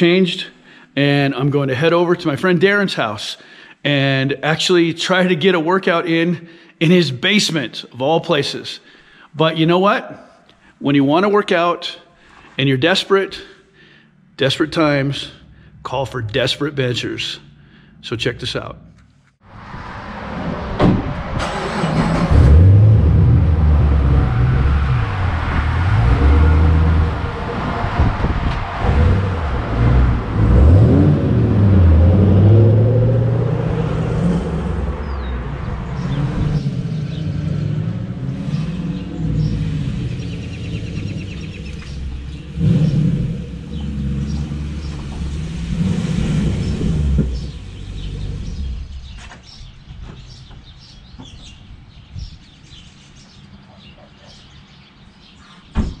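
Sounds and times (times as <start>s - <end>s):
car engine revving: 19.5s - 49.2s.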